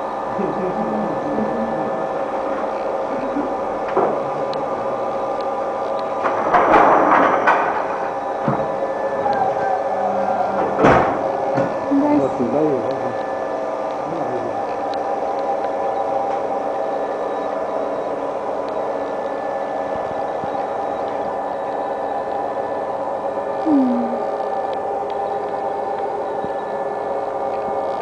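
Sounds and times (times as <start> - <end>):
factory machinery humming: 0.0 - 28.0.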